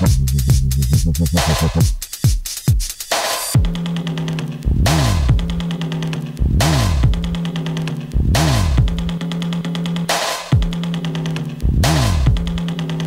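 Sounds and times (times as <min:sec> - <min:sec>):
deep bending bass: 0:00.0 - 0:01.8
fast hi-hat ticks: 0:00.0 - 0:03.6
grime instrumental: 0:00.0 - 0:13.0.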